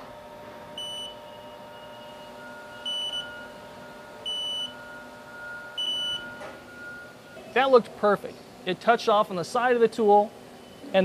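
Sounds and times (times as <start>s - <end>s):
short electronic beeps: 0.8s - 3.6s, 4.2s - 7.4s.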